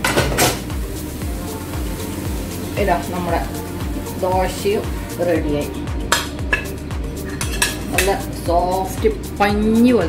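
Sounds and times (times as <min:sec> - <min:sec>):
background music beat: 0:00.0 - 0:10.0.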